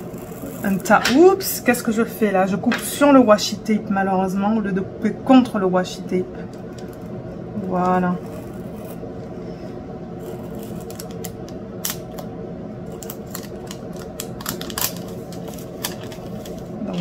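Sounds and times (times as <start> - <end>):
craft knife scratching plastic: 0.0 - 1.2, 7.8 - 9.0, 10.2 - 12.2, 12.9 - 16.8
steady low hum: 0.0 - 17.0.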